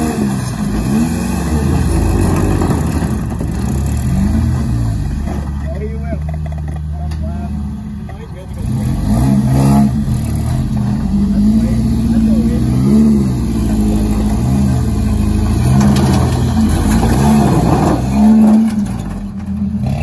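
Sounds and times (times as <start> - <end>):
truck engine revving: 0.0 - 20.0.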